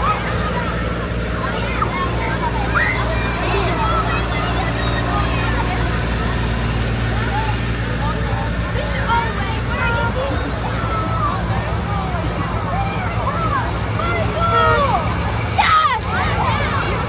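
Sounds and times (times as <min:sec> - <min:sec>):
children chattering and calling: 0:00.0 - 0:17.0
tractor engines running: 0:00.0 - 0:17.0.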